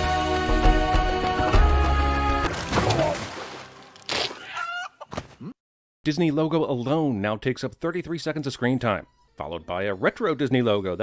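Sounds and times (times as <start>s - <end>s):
rooster squawking: 4.2s - 5.1s.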